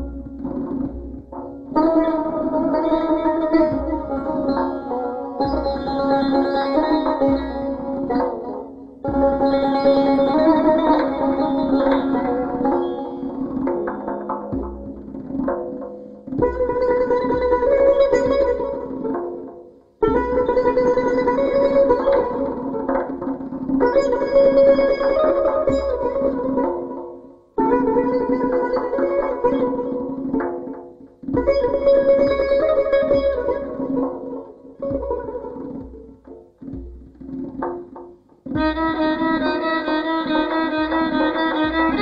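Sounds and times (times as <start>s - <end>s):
bowed violin: 0.0s - 42.0s
plucked lute playing: 0.0s - 42.0s.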